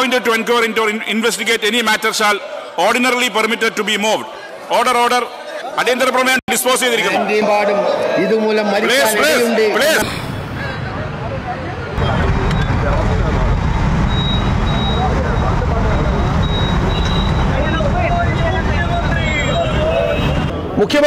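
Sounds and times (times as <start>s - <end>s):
crowd talking and calling out: 0.0s - 21.0s
heavy low rumble: 10.1s - 19.1s.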